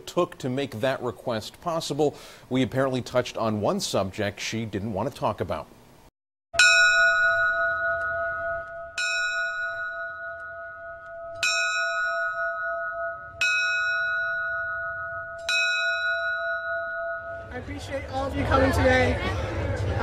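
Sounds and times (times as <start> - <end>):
ship's bell ringing: 6.6 - 18.7.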